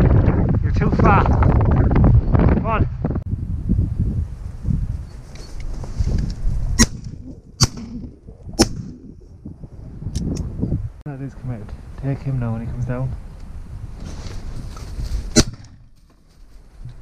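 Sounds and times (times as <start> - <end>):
wind rumbling on microphone: 0.0 - 17.0
shotgun shots: 15.3 - 15.9.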